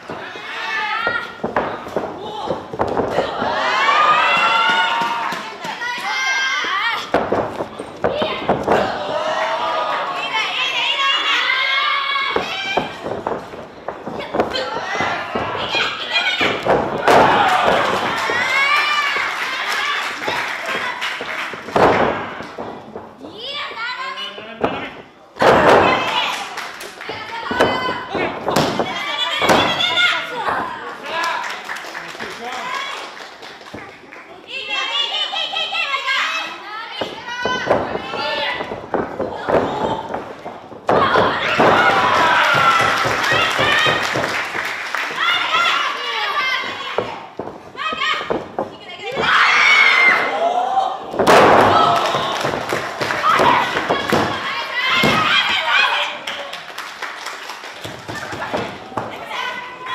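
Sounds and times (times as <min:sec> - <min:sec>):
women shouting and yelling: 0:27.0 - 0:30.8, 0:34.5 - 0:40.2, 0:47.8 - 0:56.2
women shouting: 0:47.8 - 0:48.4, 0:49.0 - 0:51.0.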